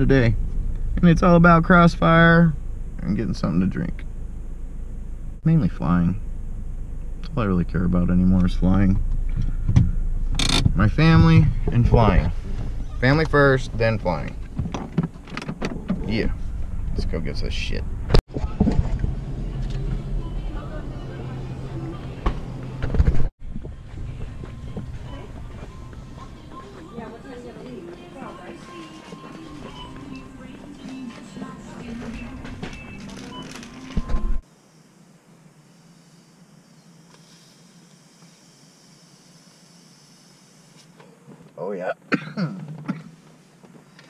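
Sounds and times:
loud low rumble with knocks: 0:00.0 - 0:05.4, 0:06.1 - 0:20.4
indistinct voices: 0:17.0 - 0:22.8, 0:23.6 - 0:34.0.

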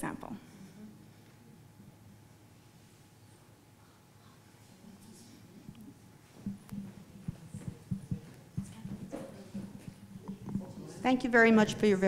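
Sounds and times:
low steady hum: 0:00.0 - 0:12.0
soft knocks and bumps: 0:06.4 - 0:10.8.

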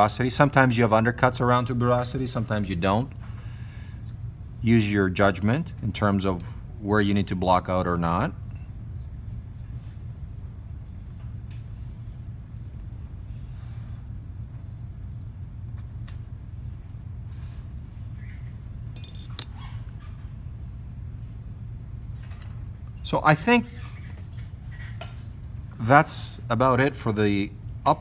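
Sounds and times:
low hum of room tone: 0:00.0 - 0:28.0.

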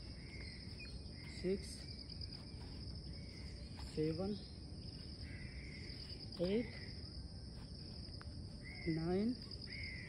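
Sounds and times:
insects droning: 0:00.0 - 0:10.0
short high insect call: 0:00.0 - 0:10.0.

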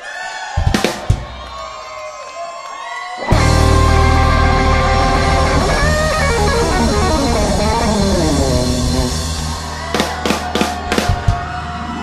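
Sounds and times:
electric guitar bending notes: 0:03.3 - 0:09.8
bass and keyboard chord: 0:03.3 - 0:09.9
drum and cymbal hits: 0:03.3 - 0:11.4.

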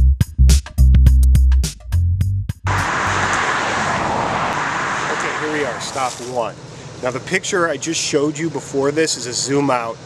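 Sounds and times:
highway traffic rushing: 0:02.7 - 0:07.4.

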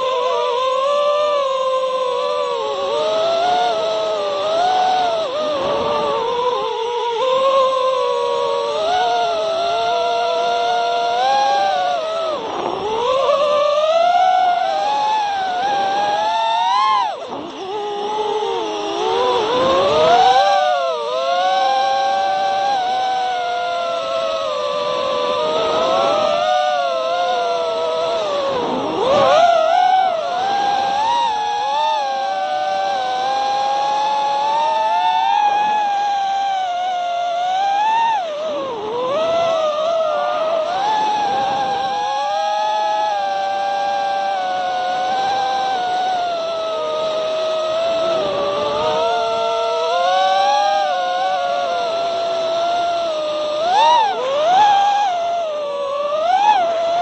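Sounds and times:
drone motors whining: 0:00.0 - 0:57.0.

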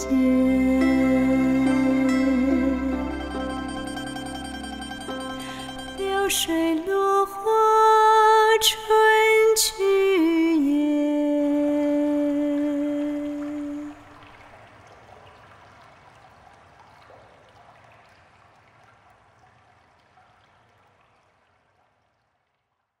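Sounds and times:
soft rain-like hiss: 0:05.3 - 0:23.0.

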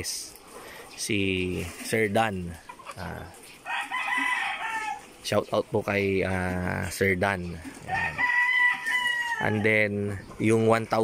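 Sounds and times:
chicken crowing: 0:03.6 - 0:05.1, 0:07.9 - 0:09.8.

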